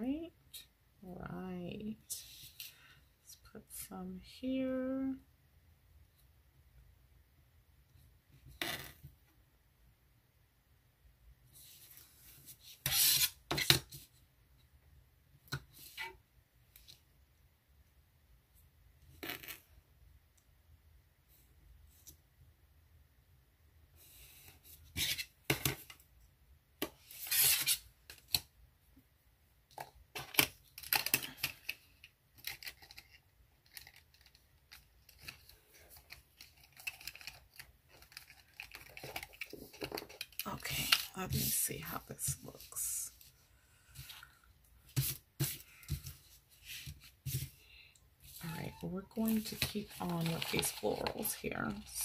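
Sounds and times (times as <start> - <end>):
paper rustling: 44.8 - 52.0.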